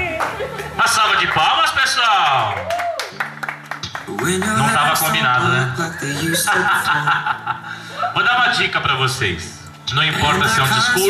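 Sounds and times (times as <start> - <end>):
people laughing: 0.0 - 1.6, 4.3 - 8.8
people talking: 0.0 - 2.6, 4.1 - 7.3, 8.0 - 11.0.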